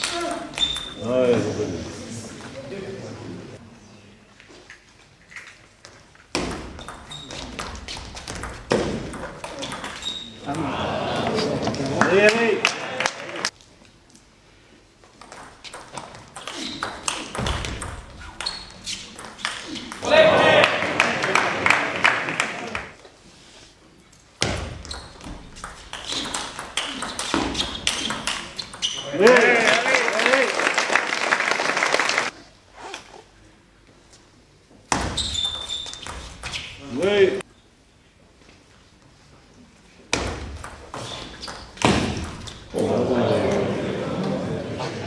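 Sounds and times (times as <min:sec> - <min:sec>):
crowd shouting and cheering: 0:20.0 - 0:23.0, 0:29.1 - 0:30.6.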